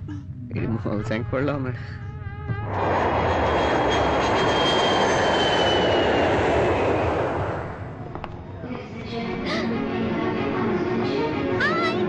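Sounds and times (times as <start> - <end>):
jet airliner passing overhead: 2.6 - 9.8.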